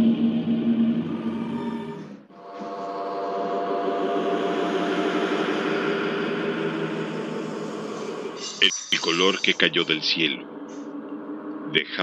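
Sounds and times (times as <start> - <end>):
dark ambient drone: 0.0 - 12.0.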